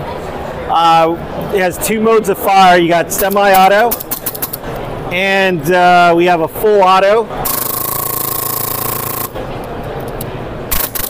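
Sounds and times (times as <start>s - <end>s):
general hubbub: 0.0s - 11.0s
airsoft gun rapid firing: 10.7s - 11.0s.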